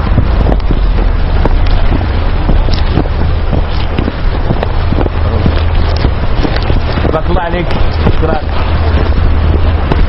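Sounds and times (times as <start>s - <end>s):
loud rumbling on microphone: 0.0s - 10.0s
clicks and crackles: 1.4s - 9.1s.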